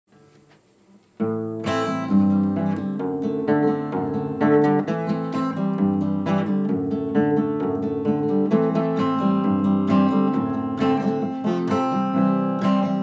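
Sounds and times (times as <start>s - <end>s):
acoustic guitar strumming: 1.2s - 13.0s.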